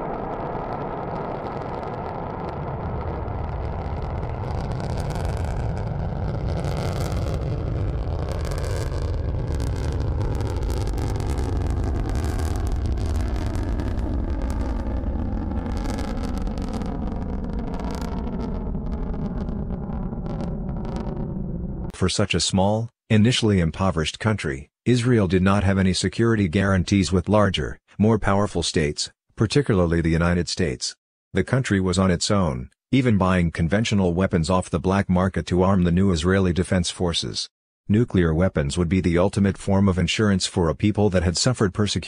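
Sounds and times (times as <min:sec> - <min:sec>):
rocket motor rumbling and crackling: 0:00.0 - 0:22.0.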